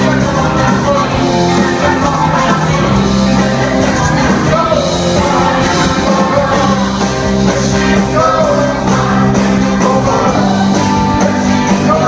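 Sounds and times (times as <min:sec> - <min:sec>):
live rock band playing: 0:00.0 - 0:12.0
man singing lead vocals: 0:00.0 - 0:12.0.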